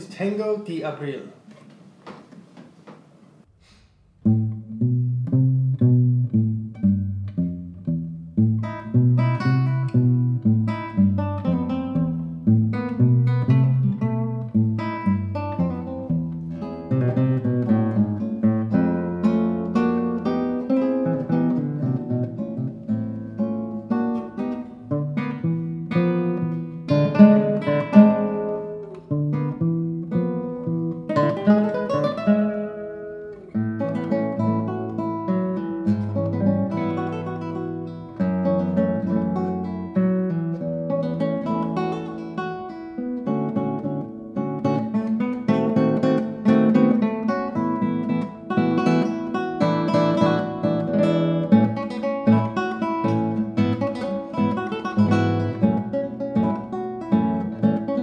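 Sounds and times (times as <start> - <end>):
classical guitars playing a tango: 4.0 - 58.0.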